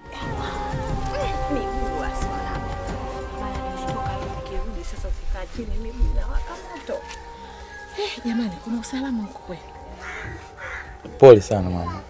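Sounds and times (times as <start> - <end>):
animal harsh calls: 10.0 - 11.0.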